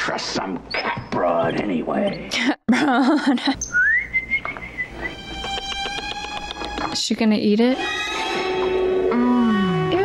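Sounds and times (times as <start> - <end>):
high whistle-like tone: 3.7 - 5.2.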